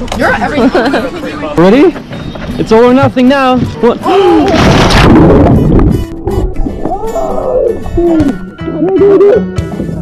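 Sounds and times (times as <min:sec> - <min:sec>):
people exclaiming and gasping: 0:04.0 - 0:09.9
background music: 0:05.8 - 0:10.0.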